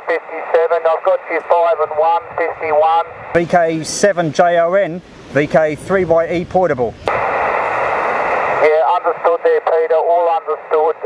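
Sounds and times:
distant voice over radio: 0.0 - 4.4, 8.5 - 11.0
radio loudspeaker hiss: 0.0 - 11.0.

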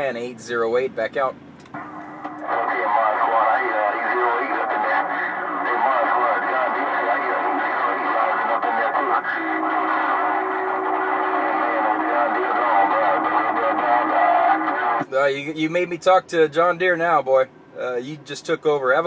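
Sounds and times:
low steady tone: 1.3 - 15.2
garbled radio voices: 2.2 - 19.0.

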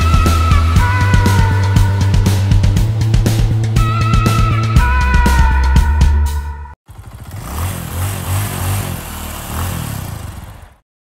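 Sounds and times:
rock music: 0.0 - 6.6
motorcycle engine revving: 6.8 - 10.8.

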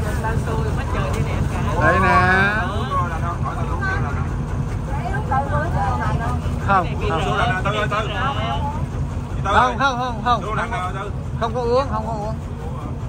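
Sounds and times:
boat engine rumbling: 0.0 - 13.0
people talking: 0.0 - 13.0.

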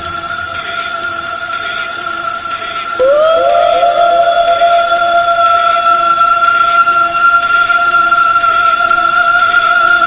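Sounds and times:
deep house synth tones: 3.0 - 7.1.

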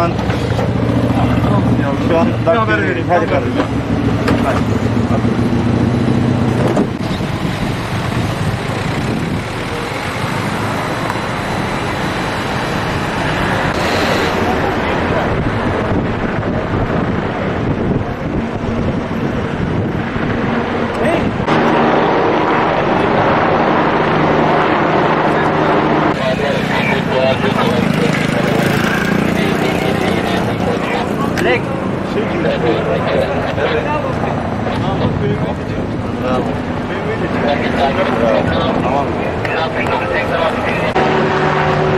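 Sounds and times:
road traffic: 0.0 - 41.9
indistinct voices: 8.3 - 41.9.

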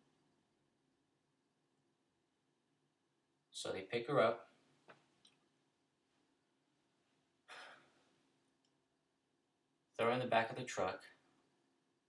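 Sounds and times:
man breathing: 7.5 - 8.2.

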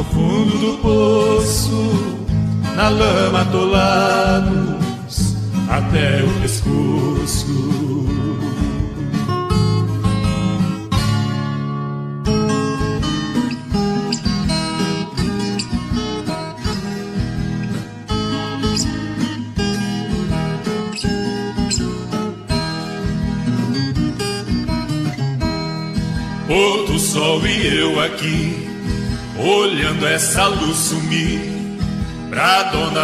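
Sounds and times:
plucked acoustic guitar music: 0.0 - 33.0.

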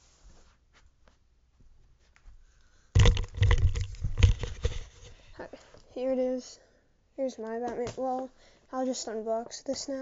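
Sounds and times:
handling noise rustling and knocks: 3.0 - 5.4.

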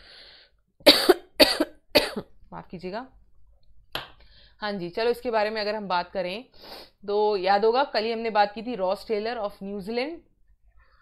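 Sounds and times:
faint breath in: 0.0 - 0.6, 4.2 - 4.6
woman coughing: 0.9 - 2.3.

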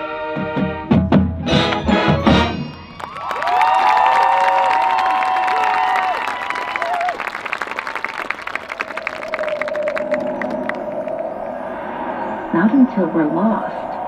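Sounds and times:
marching band chord: 0.0 - 2.9
crowd cheering: 2.6 - 12.4
crowd applauding: 2.7 - 11.4.

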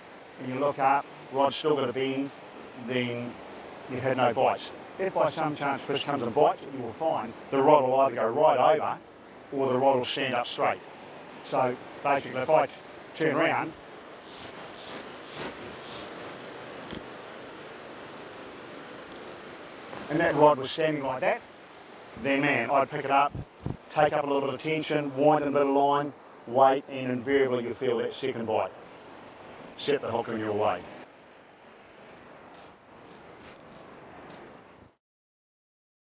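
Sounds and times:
surf and wind hiss: 0.0 - 35.0.

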